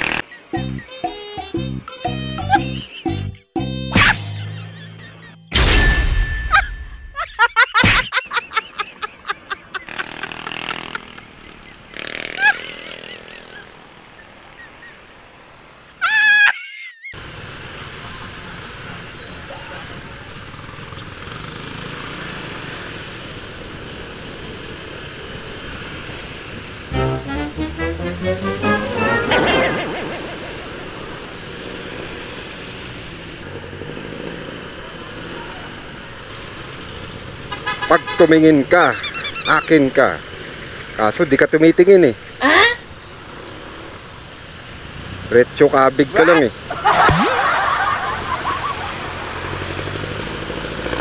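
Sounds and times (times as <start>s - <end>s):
scooter riding through traffic: 0.0s - 3.8s, 4.4s - 5.5s, 7.4s - 27.2s, 28.8s - 51.0s
road noise: 0.0s - 51.0s
tone with bending pitch: 0.5s - 6.6s, 26.9s - 30.0s
background music: 0.6s - 4.8s, 26.9s - 29.9s
motor scooter engine: 9.6s - 13.8s
rising pitched tones: 26.9s - 30.4s, 47.0s - 47.9s.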